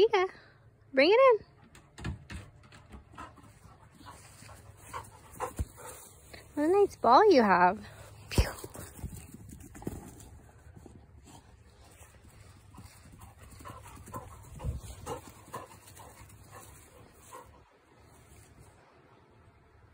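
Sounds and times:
dog panting: 2.8s - 6.6s, 11.2s - 17.8s.

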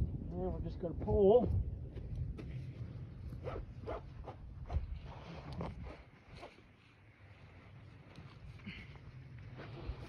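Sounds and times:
rope zipping through strap: 3.4s - 6.6s.

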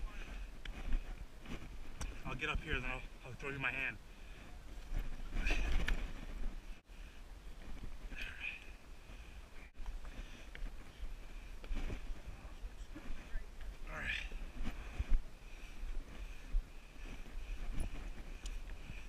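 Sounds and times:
low wind rumble: 0.0s - 19.0s.

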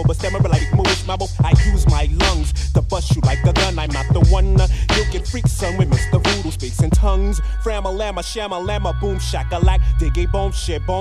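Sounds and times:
steady drum beat: 0.0s - 7.3s
heavy bass line: 0.0s - 11.0s
rapping over a beat: 0.0s - 11.0s.

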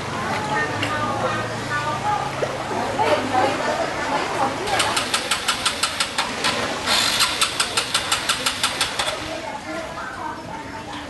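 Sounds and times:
short hiss: 6.4s - 8.9s.

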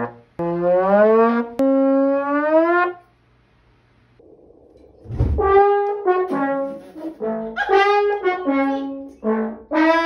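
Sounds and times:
trombone sliding upward: 4.8s - 10.0s.

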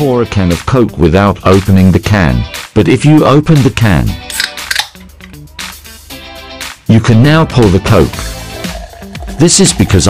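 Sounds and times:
background music: 0.0s - 10.0s
soda can opening with fizz: 4.3s - 5.4s.

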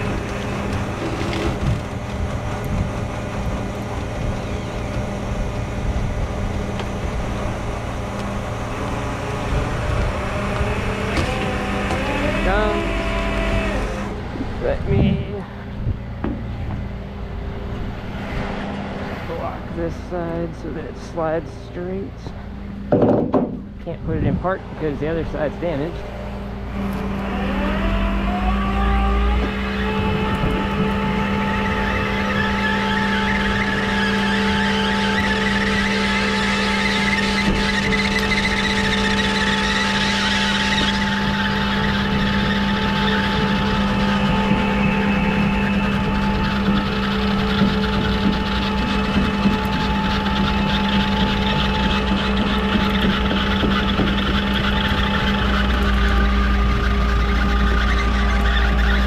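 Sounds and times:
hydraulic winch whine: 0.0s - 59.0s
truck engine running: 0.0s - 59.0s.

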